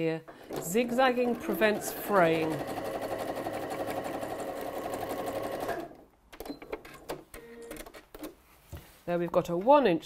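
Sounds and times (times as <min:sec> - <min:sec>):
sewing machine running: 0:00.4 - 0:06.0.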